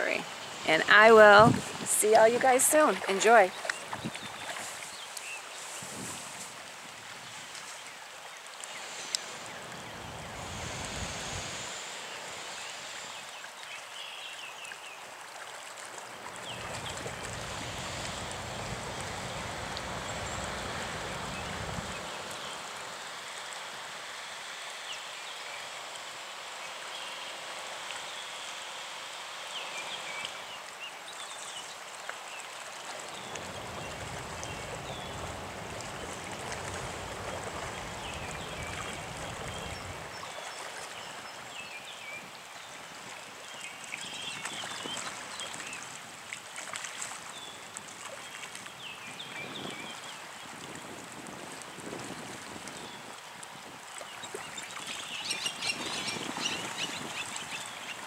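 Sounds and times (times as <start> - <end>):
floodwater flowing and lapping: 0.0 - 58.0.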